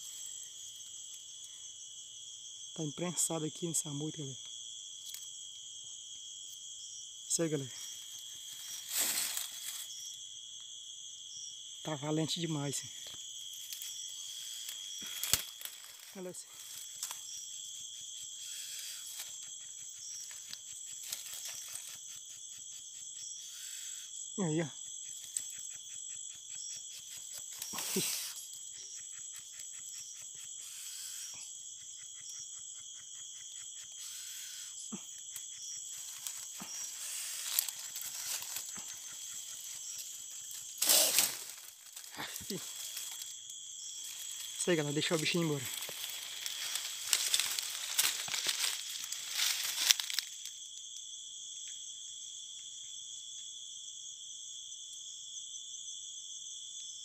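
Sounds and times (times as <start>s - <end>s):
insects chirping drone: 0.0s - 57.0s
person speaking: 7.3s - 7.8s, 16.1s - 16.6s, 42.1s - 42.9s, 44.4s - 46.1s.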